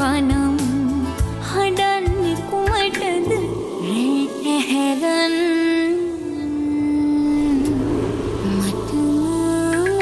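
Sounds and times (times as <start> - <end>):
pop backing music: 0.0 - 10.0
low steady drone: 3.0 - 10.0.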